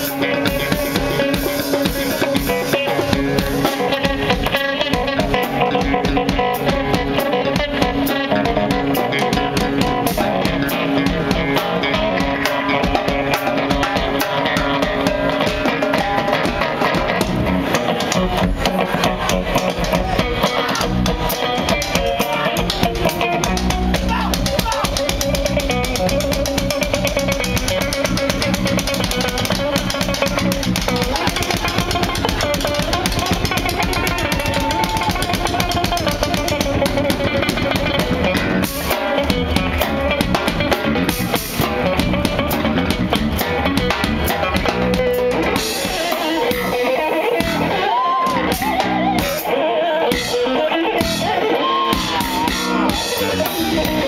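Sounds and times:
bass guitar: 0:00.0 - 0:54.0
drum kit: 0:00.0 - 0:54.0
electric guitar lead: 0:00.0 - 0:54.0.

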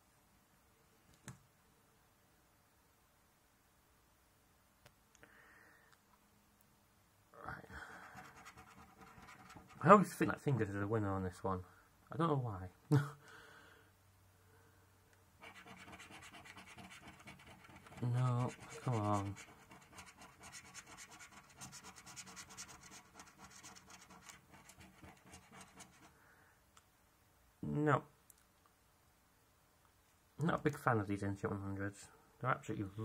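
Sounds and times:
scratchcard being scratched: 0:08.1 - 0:10.2, 0:15.4 - 0:26.1
man speaking: 0:09.8 - 0:13.1, 0:17.9 - 0:19.4, 0:30.4 - 0:33.0.

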